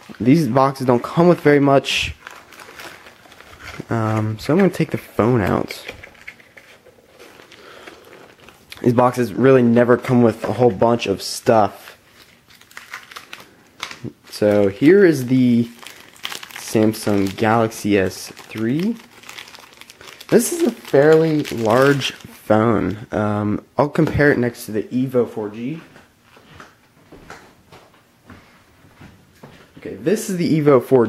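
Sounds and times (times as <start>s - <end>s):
plastic wrap rustling: 0.0s - 22.5s
soft taps and rustles: 25.8s - 29.9s.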